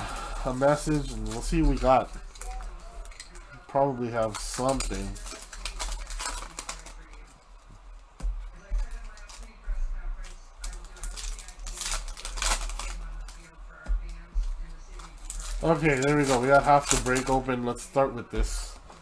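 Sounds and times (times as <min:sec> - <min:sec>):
faint background music: 0:00.0 - 0:19.0
foil wrappers crinkling and tearing: 0:00.0 - 0:19.0.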